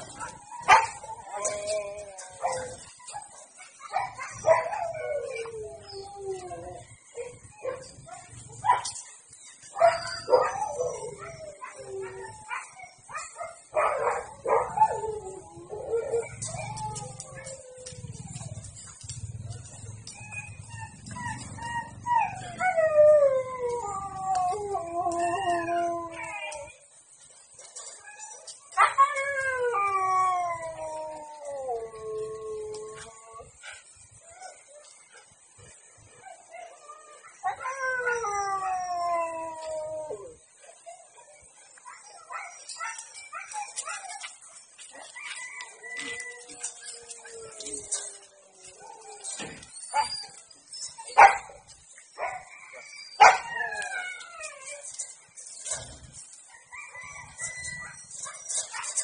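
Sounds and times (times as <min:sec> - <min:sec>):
husky howling and yelping: 0:00.0 - 0:59.0.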